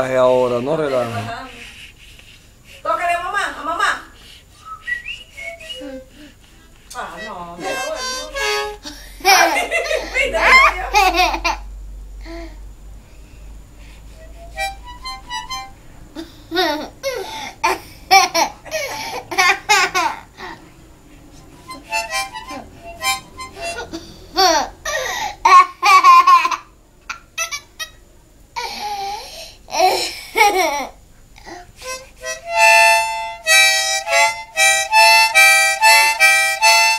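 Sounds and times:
harmonica chords: 4.6 - 6.2, 7.0 - 11.4, 14.0 - 16.8, 21.3 - 25.7, 31.8 - 36.9.

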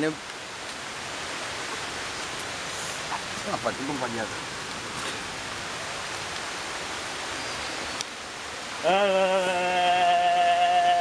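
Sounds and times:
falling water hiss: 0.0 - 11.0.

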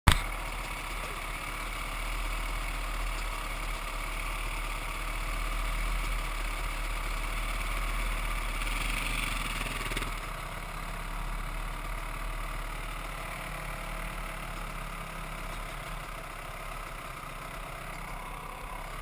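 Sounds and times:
dirt bike engine idling: 0.1 - 19.0
motorcycle approaching: 0.1 - 19.0.

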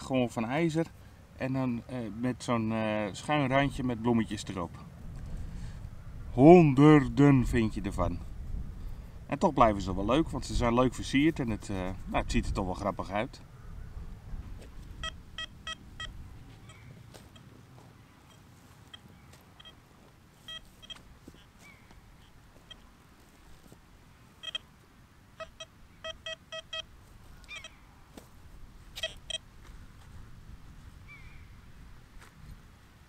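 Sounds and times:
metal detector beeps: 15.0 - 17.5, 18.2 - 19.8, 20.4 - 21.5, 22.6 - 22.9, 24.4 - 24.7, 25.4 - 26.9, 27.5 - 27.8, 29.0 - 29.4
faint bird chirps: 25.4 - 28.0.

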